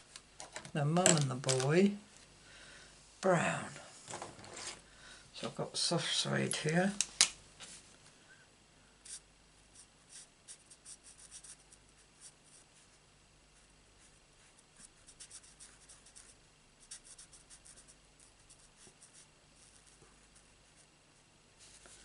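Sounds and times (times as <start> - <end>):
marker nib scratching on cardstock: 9.8 - 12.6, 13.6 - 20.9.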